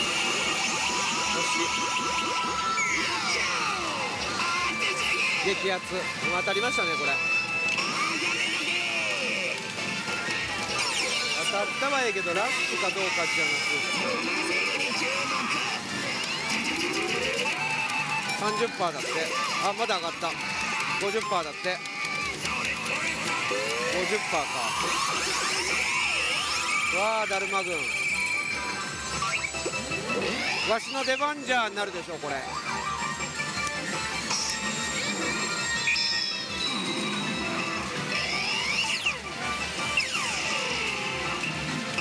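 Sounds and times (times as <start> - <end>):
pachinko hall din: 0.0 - 42.0
pachinko machine electronic music: 0.0 - 42.0.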